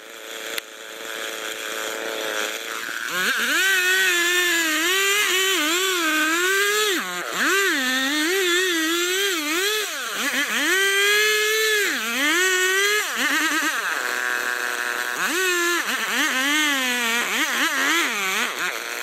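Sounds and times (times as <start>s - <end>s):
chainsaw sawing through trunk: 0.0s - 19.0s.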